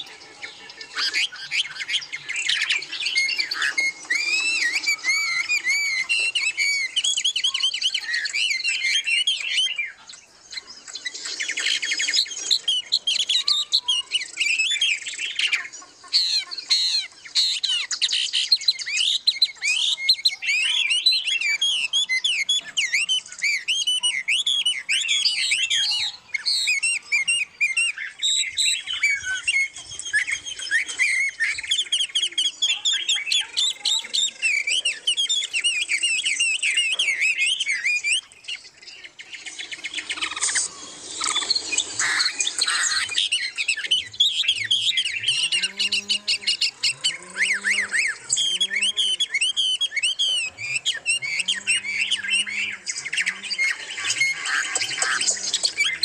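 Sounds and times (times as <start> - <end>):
songbirds chirping and singing: 0.0 - 56.0.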